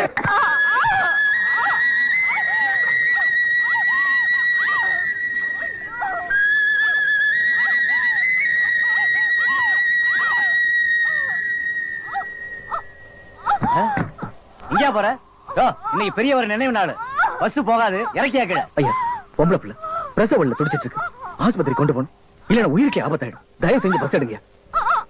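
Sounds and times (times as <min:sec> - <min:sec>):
short sliding calls: 0:00.0 - 0:16.2
long high whistle: 0:00.3 - 0:14.0.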